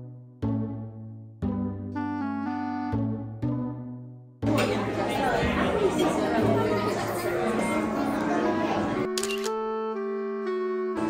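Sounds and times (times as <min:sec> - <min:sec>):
background music: 0:00.0 - 0:11.0
restaurant chatter: 0:04.4 - 0:09.4.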